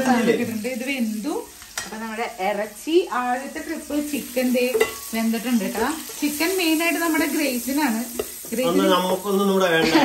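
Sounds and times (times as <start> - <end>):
chicken sizzling in oil: 0.0 - 10.0.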